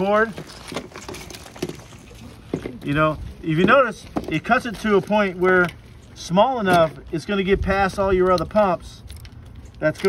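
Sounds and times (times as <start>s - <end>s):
low steady rumble: 0.0s - 10.0s
plastic pieces rustling and clicking: 0.2s - 2.2s.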